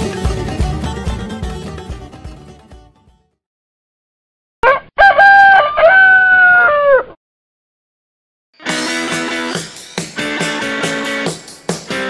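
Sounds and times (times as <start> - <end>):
rooster crowing: 4.6 - 7.2.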